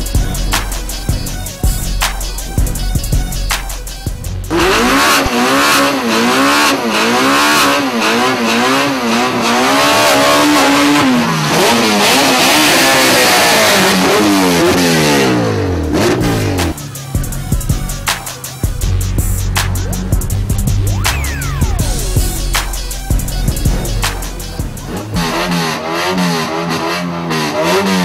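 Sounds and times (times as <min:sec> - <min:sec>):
hip-hop beat: 0:00.0 - 0:27.0
race car engines revving: 0:00.0 - 0:28.0.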